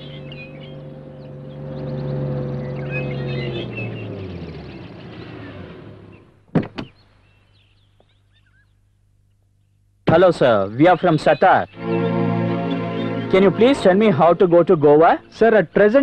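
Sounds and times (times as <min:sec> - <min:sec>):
van engine: 0:00.0 - 0:06.5.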